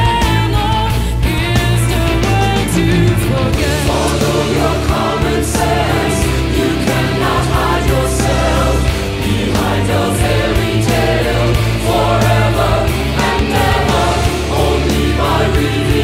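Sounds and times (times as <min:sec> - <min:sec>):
metal band playing: 0:00.2 - 0:16.0
choir singing: 0:02.6 - 0:16.0.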